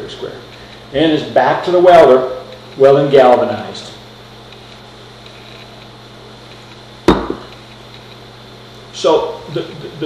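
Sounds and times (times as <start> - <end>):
low steady hum: 0.0 - 10.0
sharp knock: 7.1 - 7.5.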